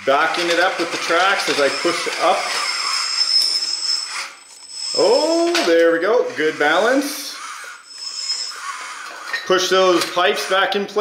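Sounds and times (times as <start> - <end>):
electric motors whining: 0.0 - 10.9.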